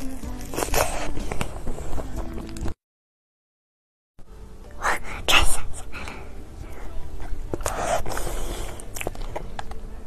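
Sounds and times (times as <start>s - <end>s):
person whispering: 4.8s - 7.0s.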